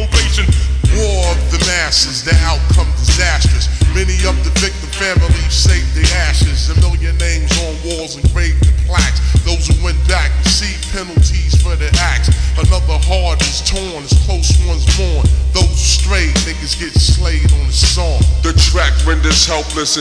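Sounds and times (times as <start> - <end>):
drum hits: 0.0 - 7.7, 8.3 - 18.8
deep sustained bass line: 0.0 - 19.6
rapper's voice: 0.0 - 20.0.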